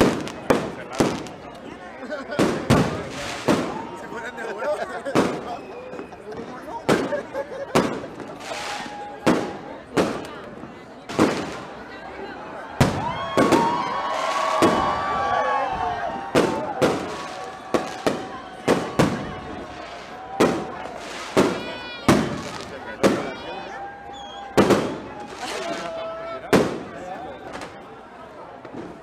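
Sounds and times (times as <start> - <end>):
firework bangs: 0.0 - 1.5, 2.2 - 4.1, 5.1 - 6.1, 6.8 - 10.3, 11.1 - 11.8, 12.8 - 23.5, 24.4 - 27.8
firework whistling: 7.8 - 9.6, 24.0 - 25.8.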